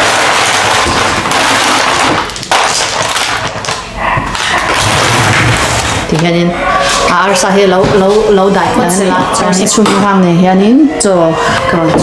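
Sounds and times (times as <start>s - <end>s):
ice cubes rattling in foil pan: 0.0s - 3.8s.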